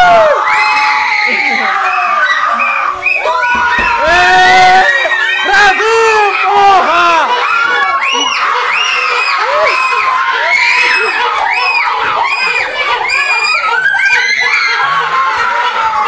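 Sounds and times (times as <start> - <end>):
girls screaming and cheering: 0.0 - 16.0.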